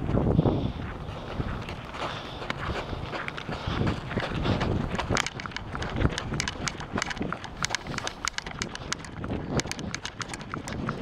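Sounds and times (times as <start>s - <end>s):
footsteps crunching on dirt: 0.0s - 11.0s.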